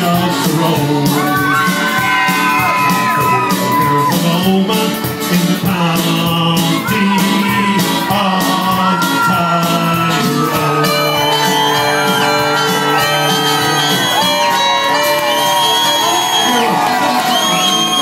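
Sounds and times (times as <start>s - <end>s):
live band playing a ballad: 0.0s - 18.0s
crowd whooping and shouting: 1.0s - 4.4s, 6.8s - 18.0s.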